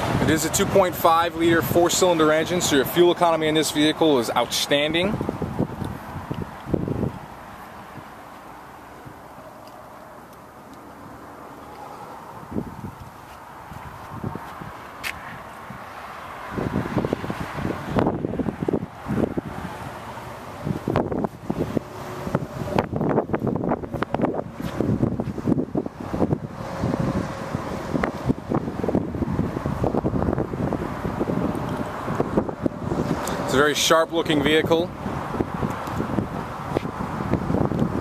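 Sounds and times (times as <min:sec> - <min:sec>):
wind buffeting microphone: 0:00.0 - 0:02.6, 0:04.4 - 0:08.2, 0:11.1 - 0:38.0.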